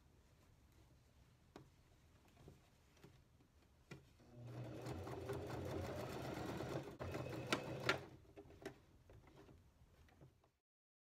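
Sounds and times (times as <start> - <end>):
sewing machine stitching: 4.2 - 9.6.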